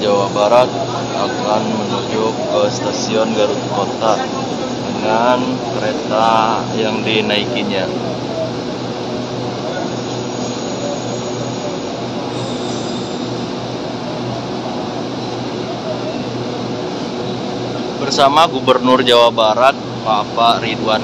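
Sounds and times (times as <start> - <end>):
diesel train idling: 0.0 - 21.0
faint crowd chatter: 0.0 - 21.0.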